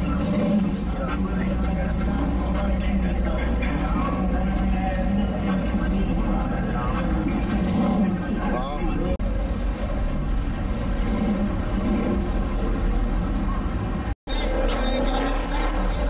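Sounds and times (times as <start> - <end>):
crowd talking: 0.0 - 9.2, 13.4 - 16.0
car engine rumbling past: 0.0 - 16.0.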